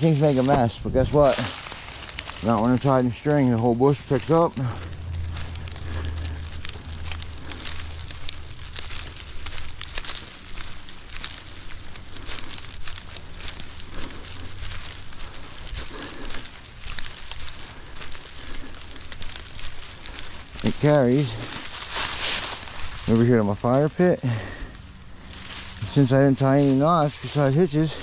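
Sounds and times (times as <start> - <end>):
dry grass stalks rustling: 0.0 - 28.0
low rumble: 0.8 - 28.0.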